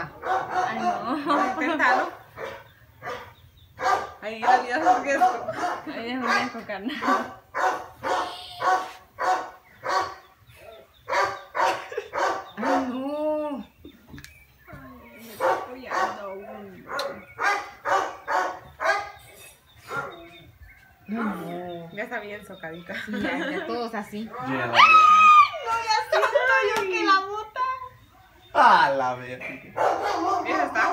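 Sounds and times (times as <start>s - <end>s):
dog barking: 0.2s - 13.0s, 15.4s - 19.2s, 19.9s - 20.3s, 29.8s - 30.9s.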